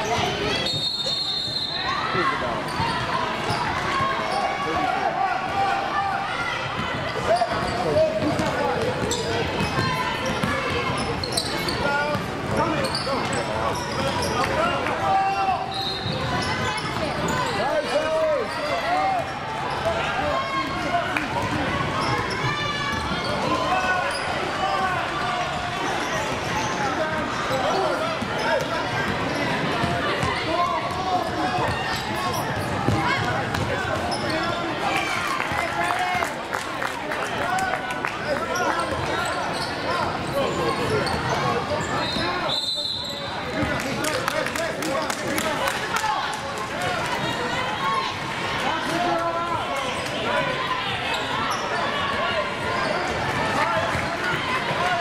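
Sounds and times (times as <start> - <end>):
shoe squeak: 0.1 - 2.0, 2.6 - 4.6, 9.0 - 14.4, 15.7 - 19.9, 31.2 - 33.2, 34.0 - 34.7, 38.6 - 43.4.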